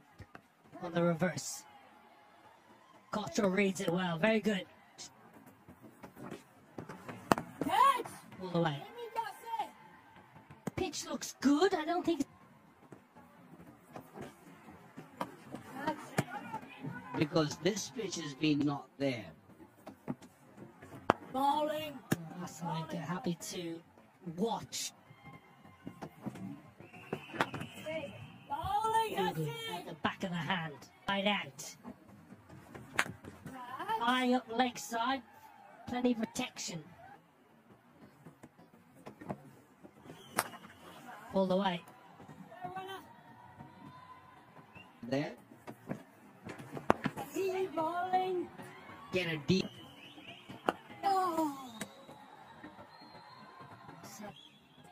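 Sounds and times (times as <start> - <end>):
stadium crowd murmur: 0.0 - 24.3, 36.5 - 54.9
cricket bat hitting ball: 6.8 - 7.8, 26.9 - 27.8, 40.2 - 40.8, 45.9 - 47.3.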